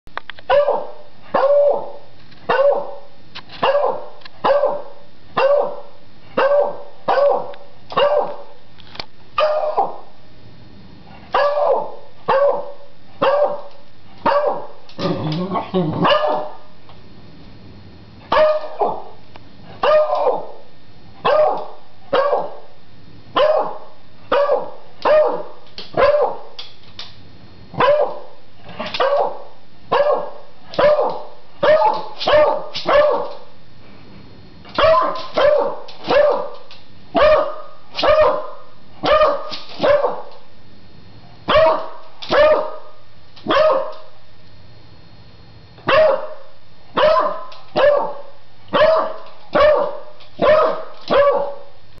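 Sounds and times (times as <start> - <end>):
dog barking: 0.5 - 8.6, 9.4 - 10.1, 11.3 - 14.8, 16.0 - 16.6, 18.3 - 19.2, 19.8 - 20.6, 21.2 - 22.7, 23.4 - 26.6, 27.8 - 33.4, 34.8 - 40.3, 41.5 - 44.1, 45.8 - 51.7.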